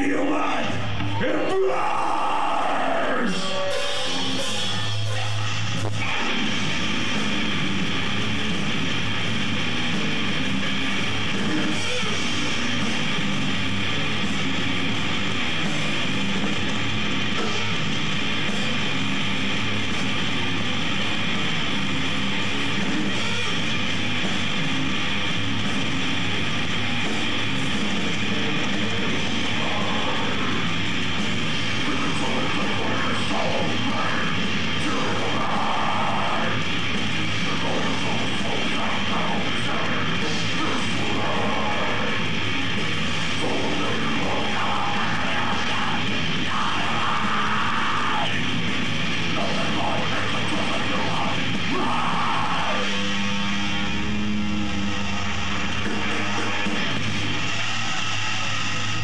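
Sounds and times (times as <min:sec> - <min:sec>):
death metal band playing: 0:00.0 - 0:59.0.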